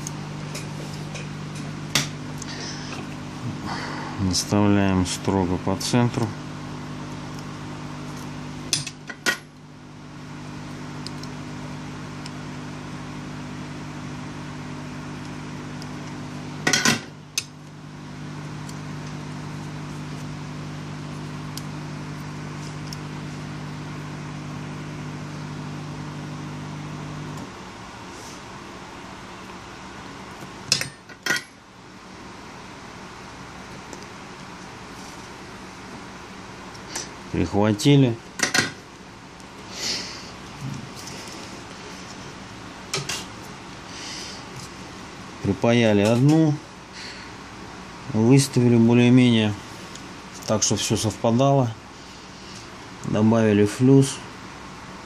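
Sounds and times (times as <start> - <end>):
low electrical hum: 0.0 - 55.0.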